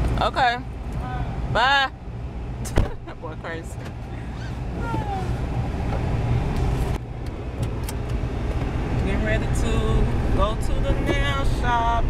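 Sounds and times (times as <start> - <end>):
car engine low rumble: 0.0 - 12.0
road noise: 0.0 - 12.0.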